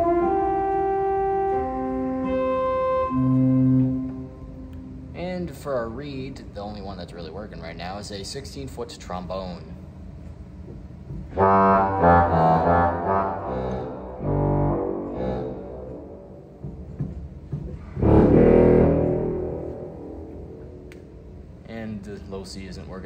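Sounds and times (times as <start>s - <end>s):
low pipe organ notes: 0.0s - 6.1s, 11.3s - 21.7s.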